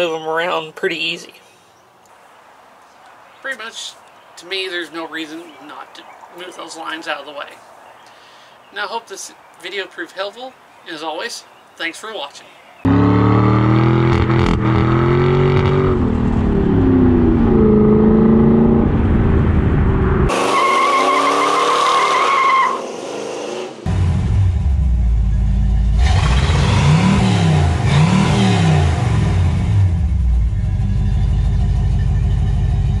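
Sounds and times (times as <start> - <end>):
car engine revving: 12.9 - 33.0.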